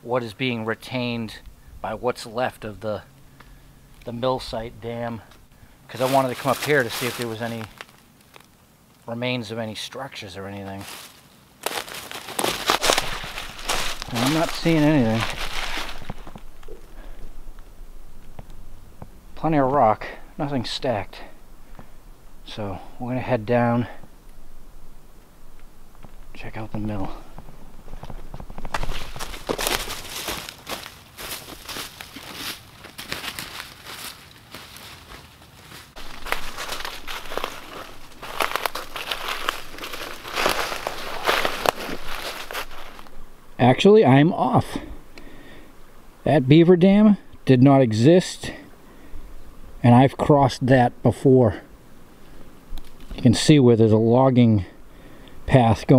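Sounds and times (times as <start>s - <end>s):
footsteps crunching through dry leaves: 4.1s - 8.5s, 10.7s - 24.0s, 25.9s - 43.8s.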